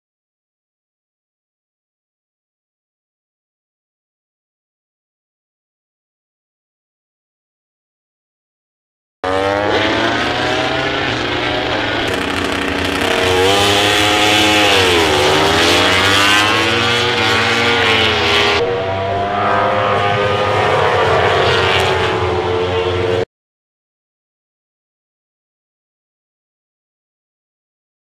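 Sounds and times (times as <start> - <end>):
racing motorcycles at high revs: 9.2 - 23.2.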